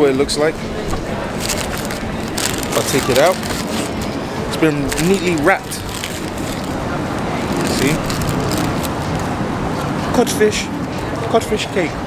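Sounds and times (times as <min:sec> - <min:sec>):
street traffic rumble and hiss: 0:00.0 - 0:12.0
paper wrapping crinkling: 0:01.3 - 0:06.8, 0:07.4 - 0:09.2.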